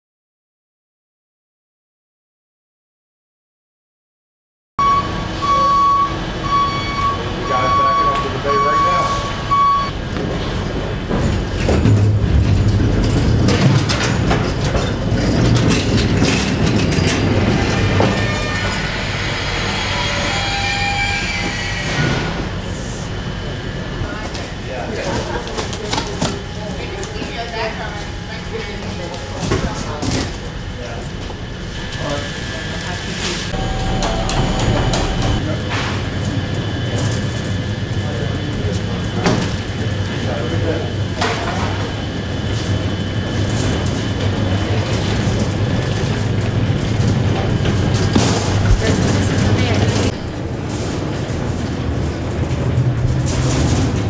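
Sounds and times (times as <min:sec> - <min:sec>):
beeping alarm: 0:04.8 - 0:10.0, 0:25.9 - 0:29.5, 0:33.5 - 0:35.4
knocks rattles and scrapes: 0:10.2 - 0:22.4, 0:43.4 - 0:54.0
low hum: 0:25.4 - 0:38.0.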